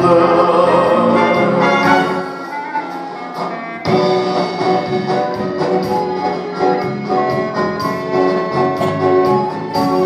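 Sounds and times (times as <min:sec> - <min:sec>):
live band playing: 0:01.0 - 0:10.0.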